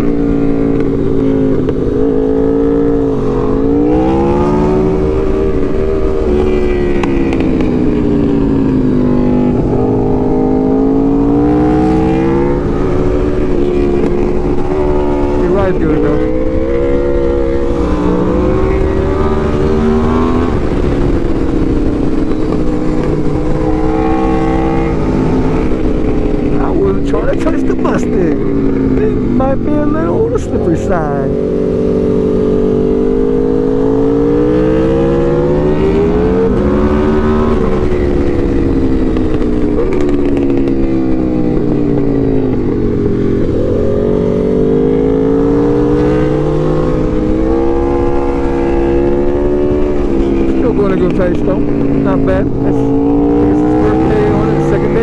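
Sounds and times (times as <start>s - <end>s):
wind noise: 0.0s - 50.6s
motorcycle engine revving: 0.0s - 55.0s.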